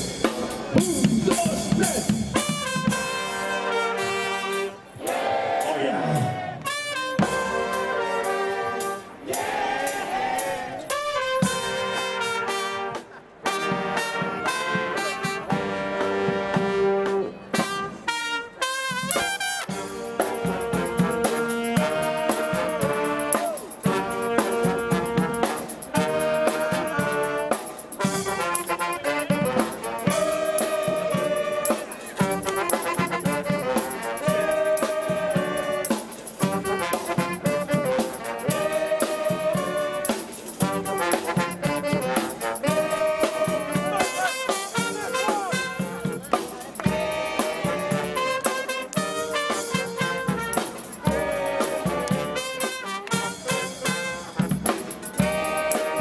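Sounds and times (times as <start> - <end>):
bass drum beat: 0.0 - 3.3, 19.1 - 35.8, 36.4 - 56.0
trumpet: 0.0 - 56.0
saxophones: 2.2 - 56.0.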